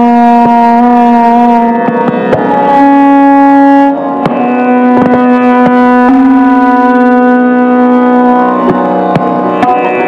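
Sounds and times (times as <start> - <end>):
tabla strokes: 0.0 - 10.0
violin long bowed notes: 0.0 - 10.0.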